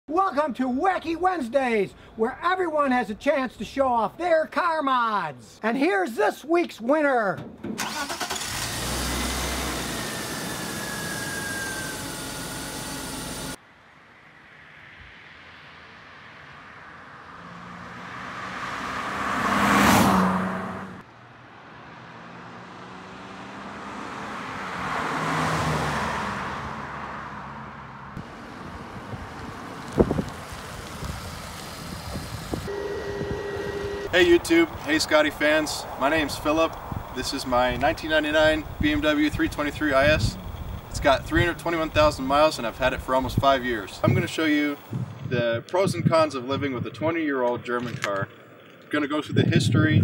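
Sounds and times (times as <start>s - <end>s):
car engine running: 8.4s - 13.6s, 28.2s - 44.2s
car driving past: 13.6s - 32.0s.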